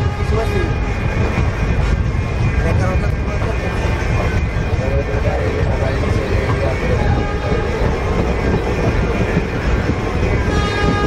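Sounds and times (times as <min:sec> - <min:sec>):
train rumble: 0:00.0 - 0:11.0
rushing air: 0:05.6 - 0:11.0.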